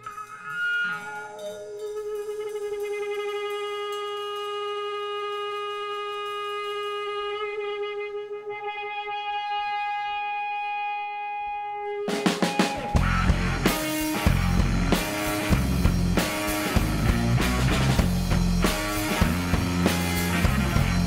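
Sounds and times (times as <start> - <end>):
electric guitar sustained note: 0.0 - 21.0
rock band playing: 8.9 - 21.0.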